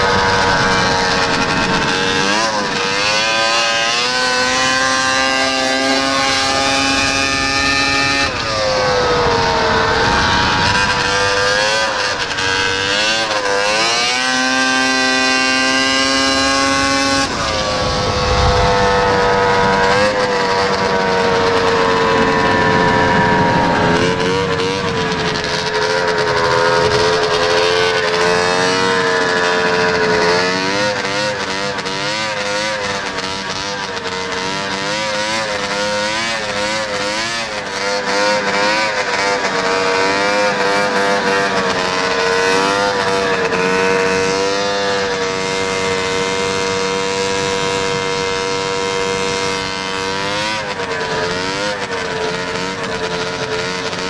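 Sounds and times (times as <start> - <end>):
track noise: 0.0 - 34.8
rush of wind: 0.0 - 54.0
snowmobile engine running hard: 0.0 - 54.0.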